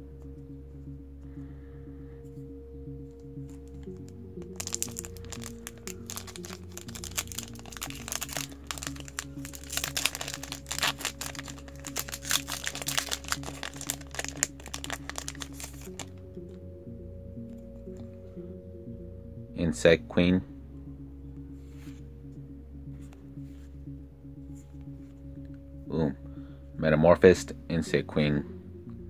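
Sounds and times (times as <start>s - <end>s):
foil wrapper crinkling and tearing: 4.6s - 16.1s.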